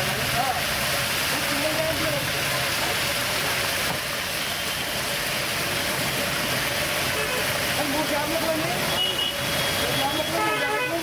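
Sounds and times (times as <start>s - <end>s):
oil sizzling while deep-frying: 0.0s - 11.0s.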